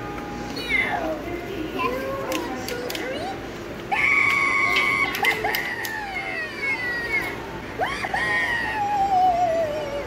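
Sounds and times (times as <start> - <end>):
high-pitched wavering recorded voice: 0.6 - 10.0.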